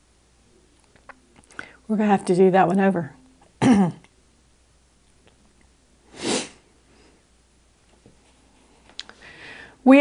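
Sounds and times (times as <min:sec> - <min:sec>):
woman sniffing: 0:06.1 - 0:06.6.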